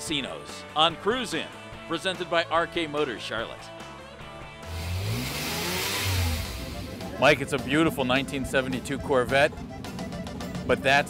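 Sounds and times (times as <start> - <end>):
car engine revving: 4.6 - 7.6
rushing hiss: 4.7 - 7.1.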